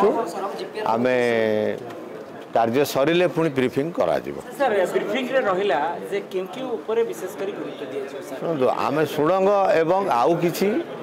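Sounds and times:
man talking: 8.4 - 10.9.

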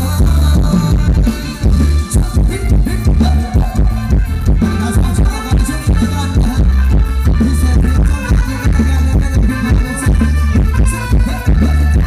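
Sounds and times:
heavy low drum beat: 0.0 - 12.0
live dance band music: 0.0 - 12.0.

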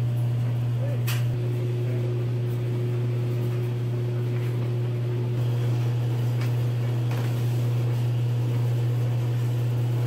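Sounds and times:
machines humming: 0.0 - 10.0.

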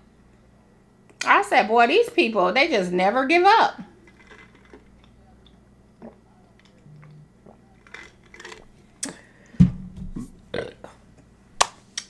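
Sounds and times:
woman swallowing a drink: 6.0 - 9.2
loud burp: 10.5 - 11.0.

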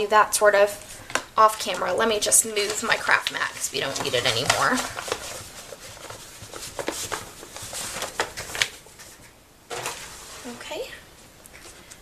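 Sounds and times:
mat rustling and knocks: 3.9 - 10.6.

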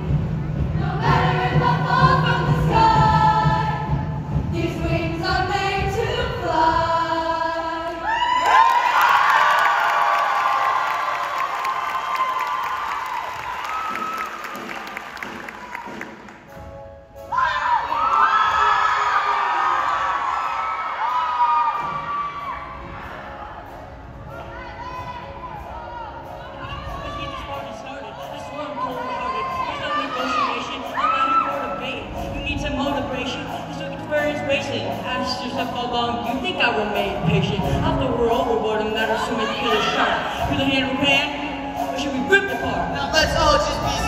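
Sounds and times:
choir singing: 0.6 - 8.3
audience cheering and screaming: 8.0 - 16.3, 17.3 - 23.8.

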